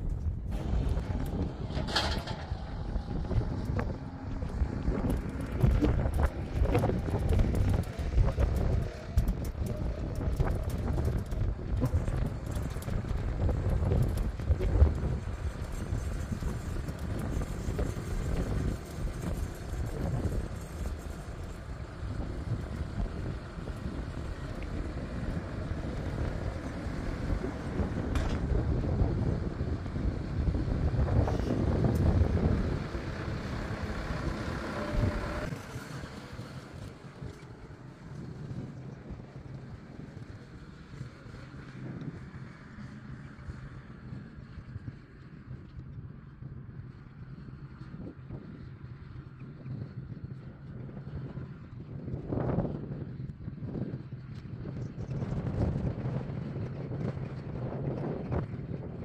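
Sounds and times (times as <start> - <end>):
tractor engine running: 0.0 - 52.7
wind buffeting microphone: 0.0 - 59.0.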